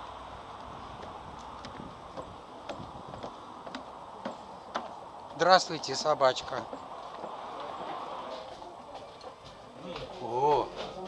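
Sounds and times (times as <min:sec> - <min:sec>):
footsteps on wooden stairs: 0:00.0 - 0:11.0.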